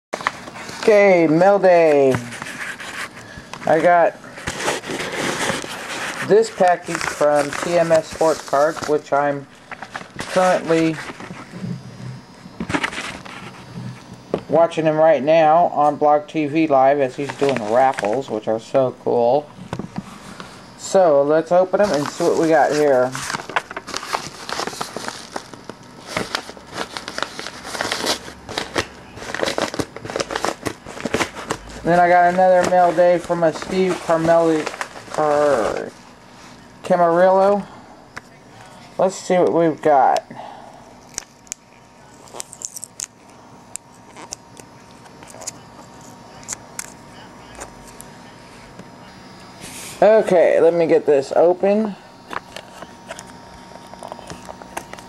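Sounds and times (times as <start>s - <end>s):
package paper and plastic crinkling: 0.2s - 14.5s, 17.1s - 18.5s, 19.6s - 37.6s, 41.0s - 48.2s, 51.2s - 55.0s
faint steady hum: 0.2s - 55.0s
plastic clicks and crinkles: 52.2s - 55.0s.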